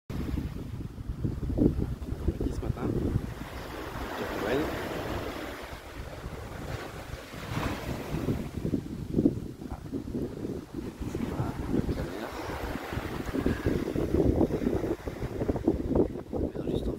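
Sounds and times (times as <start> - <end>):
wind buffeting microphone: 0.1 - 16.9.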